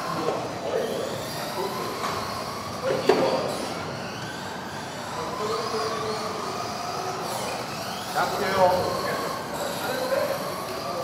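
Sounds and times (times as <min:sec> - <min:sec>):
rc car motors whining: 0:00.0 - 0:11.0.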